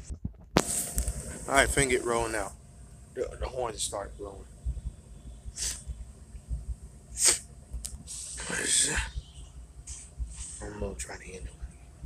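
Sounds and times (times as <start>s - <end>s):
person sniffing: 5.6s - 5.9s, 7.2s - 7.4s, 8.1s - 9.2s.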